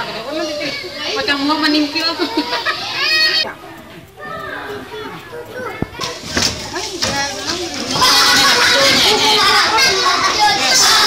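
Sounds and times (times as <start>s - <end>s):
children chattering and playing: 0.0s - 11.0s.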